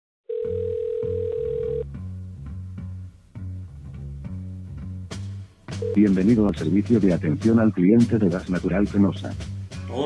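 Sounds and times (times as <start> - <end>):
phone line noise: 0.3 - 1.8, 5.8 - 6.1
phone ringback beep: 0.3 - 1.8, 5.8 - 6.0
low bass notes: 1.8 - 10.0.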